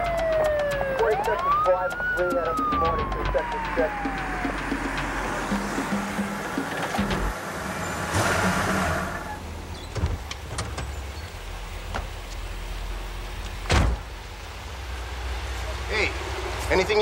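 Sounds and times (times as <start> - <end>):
police siren: 0.0 - 9.4
street noise: 0.0 - 17.0.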